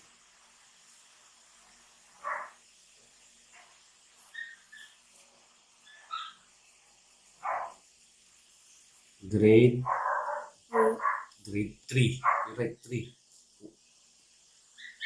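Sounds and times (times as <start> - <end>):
dog barking faintly: 2.2 - 2.6, 7.4 - 7.8, 12.2 - 12.6.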